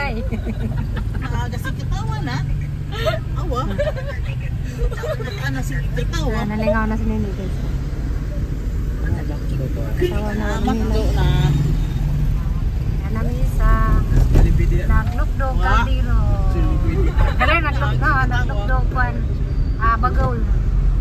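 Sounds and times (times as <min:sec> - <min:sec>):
voices talking: 0:00.0 - 0:20.6
car driving heard from inside: 0:00.0 - 0:21.0.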